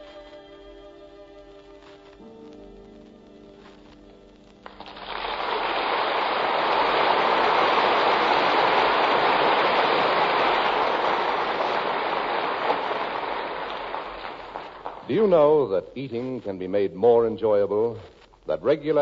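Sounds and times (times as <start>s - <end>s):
audience applauding: 4.6s - 15.6s.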